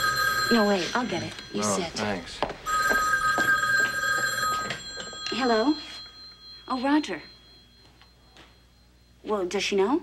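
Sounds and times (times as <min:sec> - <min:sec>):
desk telephone ringing: 0:00.0 - 0:09.6.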